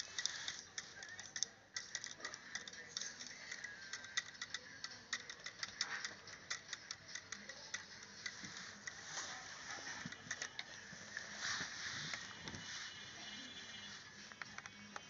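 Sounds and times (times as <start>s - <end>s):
rotor blades clicking on ruler: 0.0s - 9.0s.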